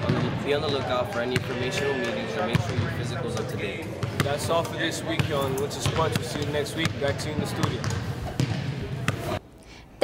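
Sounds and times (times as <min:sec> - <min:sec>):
basketballs bouncing on hardwood: 0:00.0 - 0:01.6, 0:02.5 - 0:03.4, 0:05.2 - 0:09.2.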